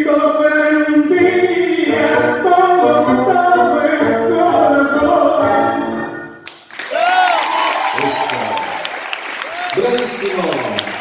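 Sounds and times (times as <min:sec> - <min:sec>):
tango music with singing: 0:00.0 - 0:06.4
audience applause: 0:06.5 - 0:11.0.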